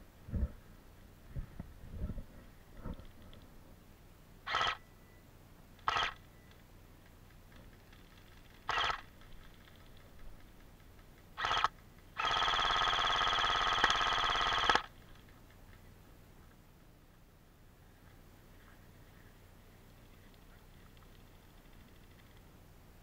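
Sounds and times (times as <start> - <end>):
airsoft rifle firing bursts: 4.5 - 4.8, 5.8 - 6.2, 8.2 - 9.8, 11.4 - 15.0.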